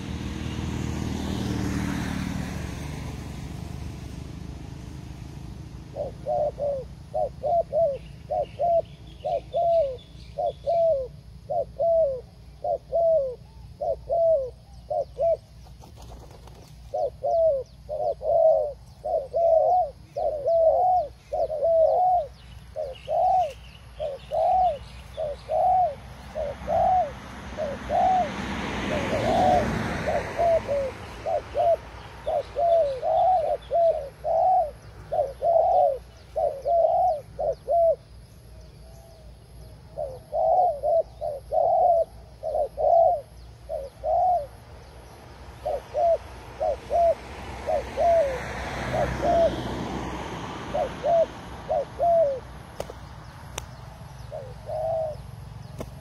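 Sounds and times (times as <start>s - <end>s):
small birds chirping: 2.8s - 28.3s, 29.0s - 49.6s, 50.7s - 56.0s
dove cooing: 5.5s - 44.9s, 45.5s - 53.1s, 54.0s - 56.0s.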